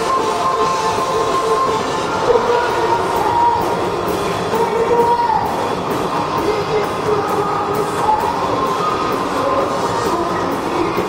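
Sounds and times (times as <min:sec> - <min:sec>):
live hard rock band: 0:00.0 - 0:11.0.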